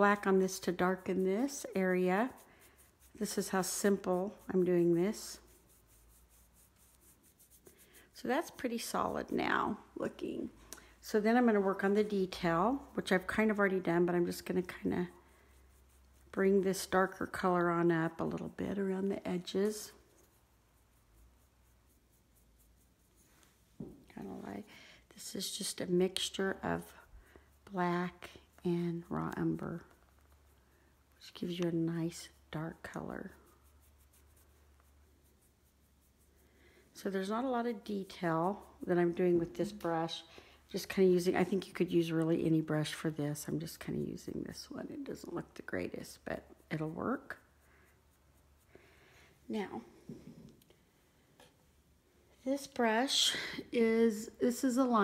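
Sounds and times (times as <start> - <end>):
paintbrush rubbing: 0.0 - 49.1.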